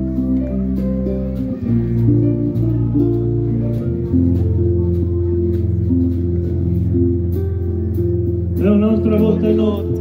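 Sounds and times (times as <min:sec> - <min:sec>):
acoustic guitar: 0:00.0 - 0:10.0
electric bass: 0:00.0 - 0:10.0.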